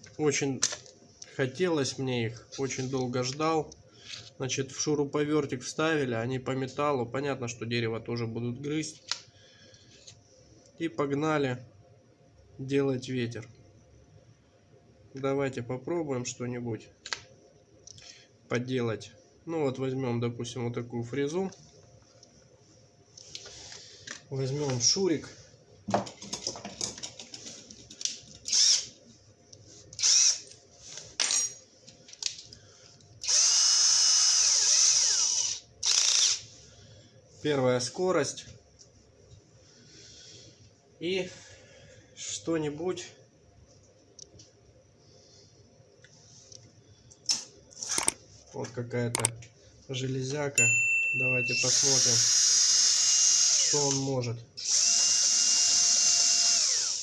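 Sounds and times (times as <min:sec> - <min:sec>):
cordless drill whirring: 0:28.5 - 0:28.9, 0:30.0 - 0:30.4, 0:33.2 - 0:36.4, 0:51.7 - 0:57.0
drill click: 0:28.5 - 0:28.9, 0:30.0 - 0:30.5, 0:33.2 - 0:36.4, 0:47.3 - 0:48.2, 0:51.6 - 0:57.0.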